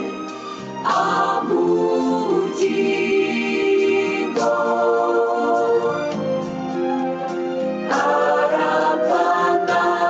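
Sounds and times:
choir singing a hymn: 0:00.8 - 0:06.1, 0:07.8 - 0:10.0.

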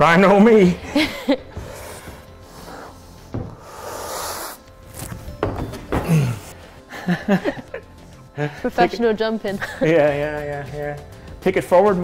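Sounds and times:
background music: 0:00.0 - 0:12.0
shoes knocking on climbing wall: 0:03.3 - 0:03.6, 0:05.2 - 0:06.4.

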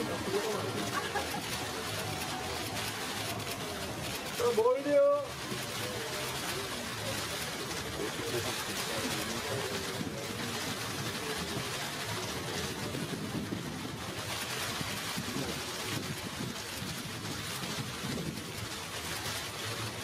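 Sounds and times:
murmur of the room: 0:00.0 - 0:16.6
camera shutters clicking rapidly: 0:00.2 - 0:13.5.

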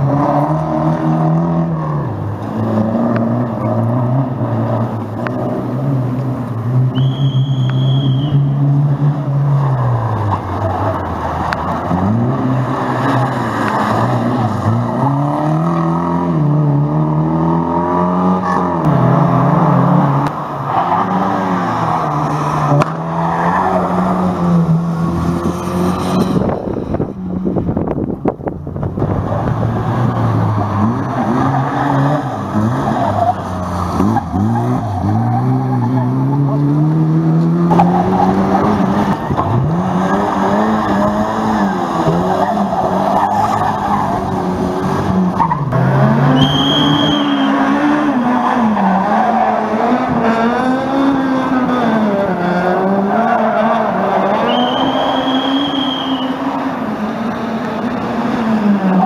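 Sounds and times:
rally car engine revving: 0:00.0 - 0:59.0
tyres skidding on asphalt: 0:00.0 - 0:59.0.

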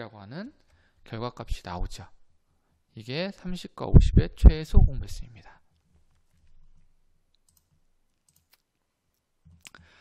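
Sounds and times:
computer mouse clicks: 0:07.3 - 0:08.7.

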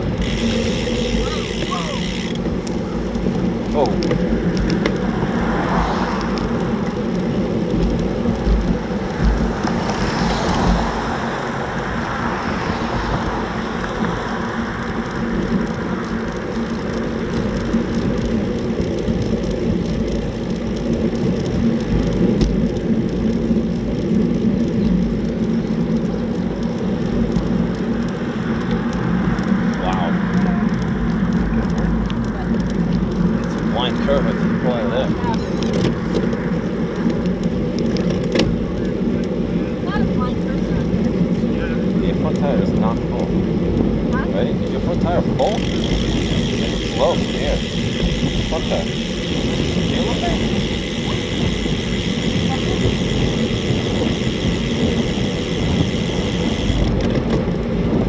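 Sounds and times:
tyre and road hum: 0:00.0 - 0:58.0
wind rumble on microphone: 0:00.0 - 0:58.0.

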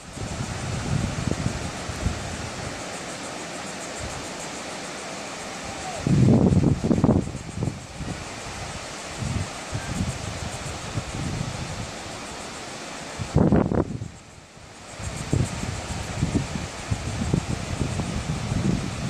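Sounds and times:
wind buffeting microphone: 0:00.0 - 0:02.8, 0:06.0 - 0:12.0, 0:13.2 - 0:14.2, 0:14.9 - 0:19.0
ocean surf on beach: 0:00.0 - 0:19.0.

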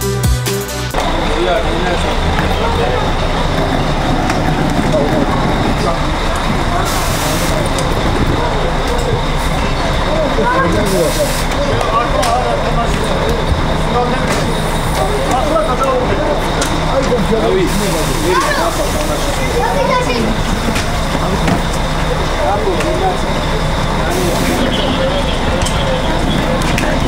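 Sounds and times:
bus engine idling: 0:00.0 - 0:27.0
people chattering: 0:00.9 - 0:27.0.

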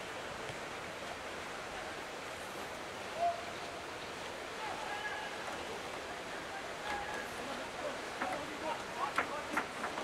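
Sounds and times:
outdoor ambience hiss: 0:00.0 - 0:10.0.

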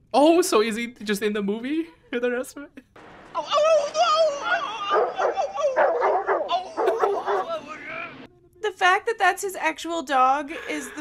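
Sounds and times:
dog barking and yipping: 0:04.8 - 0:07.7.

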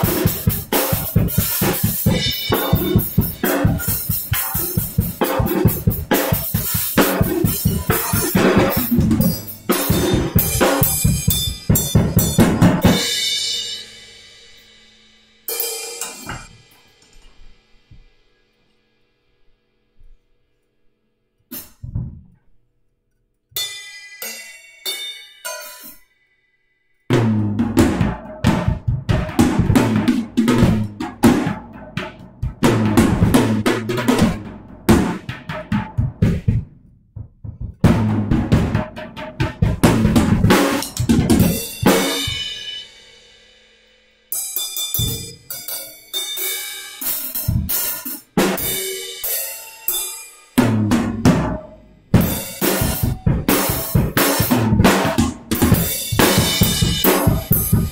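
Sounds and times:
drum kit playing: 0:00.0 - 0:18.4, 0:21.5 - 0:22.3, 0:27.1 - 0:43.4, 0:44.3 - 0:57.9.

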